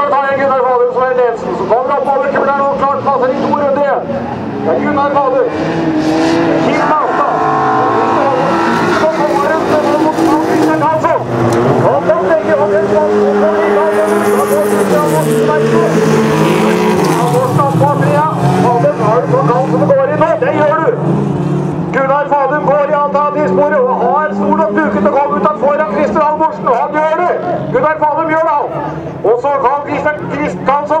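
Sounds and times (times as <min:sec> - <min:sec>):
loudspeaker announcer talking: 0:00.0 - 0:05.8, 0:06.4 - 0:21.2, 0:21.8 - 0:31.0
race car engines running hard: 0:00.0 - 0:31.0.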